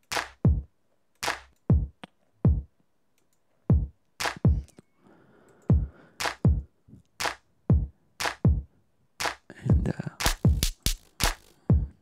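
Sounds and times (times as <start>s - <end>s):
deep kick drum hits: 1.7s - 1.9s, 3.7s - 4.6s, 7.7s - 8.6s
bright snare hits: 4.2s - 4.5s, 6.2s - 6.5s.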